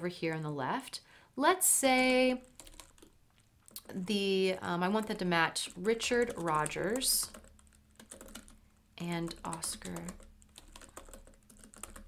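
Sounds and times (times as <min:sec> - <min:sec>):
computer keyboard typing: 0:02.4 - 0:12.0.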